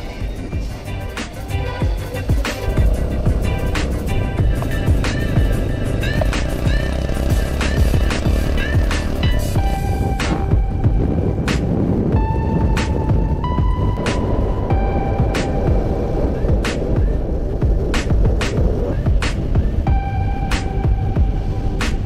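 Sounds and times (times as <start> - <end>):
background music with steady beat: 0.0 - 22.0
low rumble: 0.0 - 22.0.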